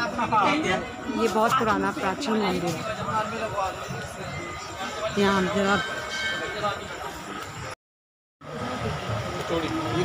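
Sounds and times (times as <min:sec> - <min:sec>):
busy street market noise: 0:00.0 - 0:07.8, 0:08.4 - 0:10.0
voices: 0:00.0 - 0:07.8.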